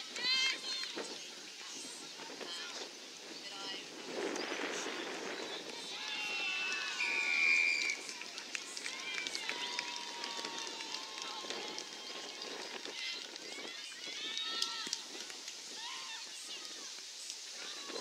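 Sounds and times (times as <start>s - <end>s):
people calling and shouting: 0.0s - 18.0s.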